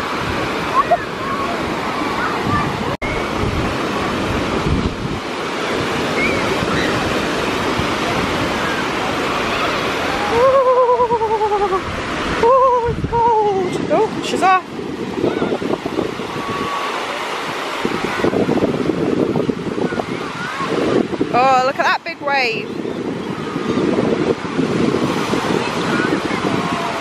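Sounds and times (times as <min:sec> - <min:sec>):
waves washing up shore: 0:00.0 - 0:27.0.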